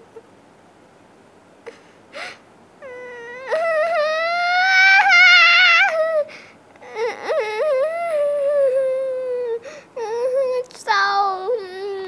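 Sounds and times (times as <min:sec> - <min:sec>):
child wailing: 0:02.8 - 0:12.0.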